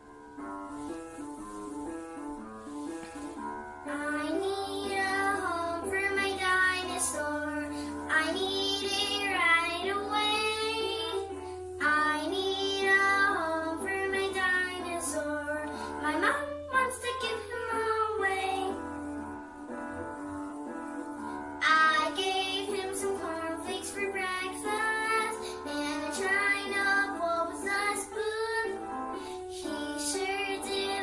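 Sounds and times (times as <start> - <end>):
instrumental accompaniment: 0.0 - 31.0
girl singing: 3.8 - 19.4, 21.1 - 31.0.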